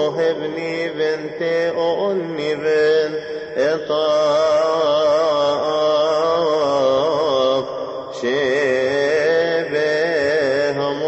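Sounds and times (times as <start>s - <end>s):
liturgical chant: 0.0s - 11.0s.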